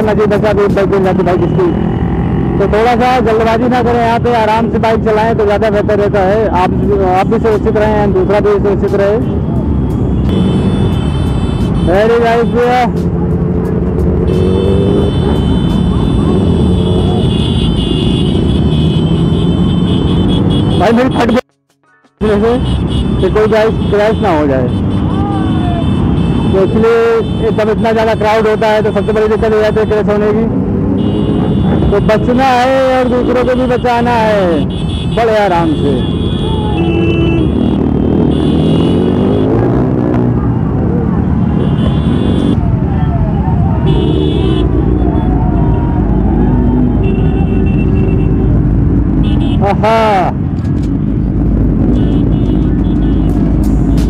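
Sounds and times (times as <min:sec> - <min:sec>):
motorcycle engines rumbling: 0:00.0 - 0:54.0
people's voices: 0:38.9 - 0:47.0.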